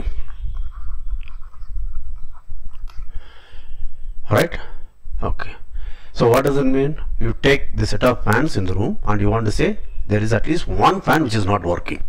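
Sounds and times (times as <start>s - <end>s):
soft breath-like hiss: 2.9s - 5.0s.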